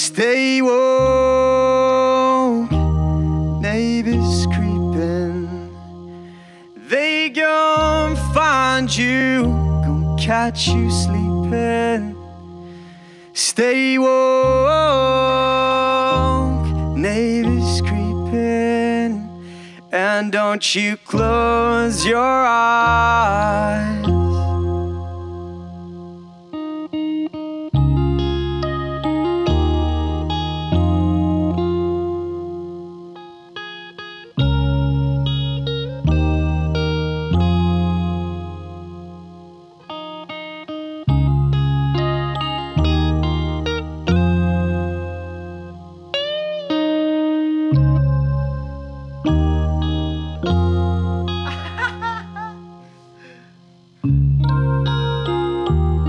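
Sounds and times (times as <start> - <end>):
electric guitar playing: 0.0 - 56.0
keyboard playing deep bass notes: 0.0 - 56.0.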